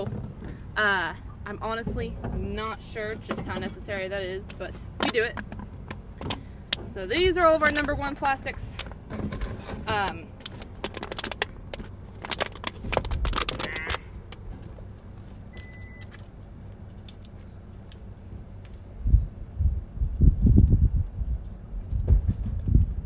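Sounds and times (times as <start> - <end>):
low rumbling thuds: 0.0 - 10.2, 19.0 - 23.0
plastic bottles crinkling: 8.8 - 14.9.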